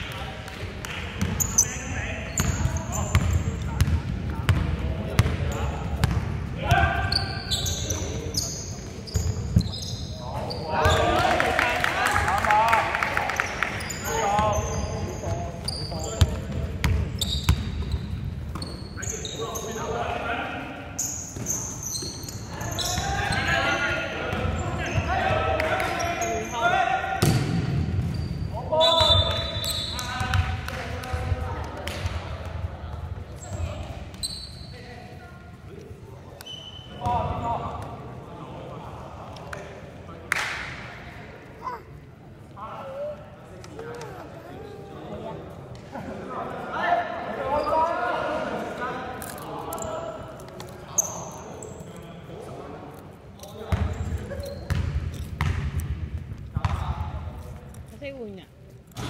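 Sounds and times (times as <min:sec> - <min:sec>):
players' voices: 0:00.0 - 0:59.0
sneakers squeaking: 0:00.9 - 0:11.4, 0:13.2 - 0:38.0, 0:47.4 - 0:48.1, 0:49.5 - 0:52.1, 0:52.9 - 0:59.0.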